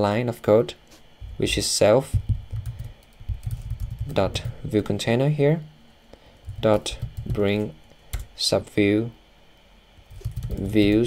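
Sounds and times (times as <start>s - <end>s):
typing on computer keyboard: 2.2s - 4.6s, 6.5s - 7.4s, 10.1s - 11.0s.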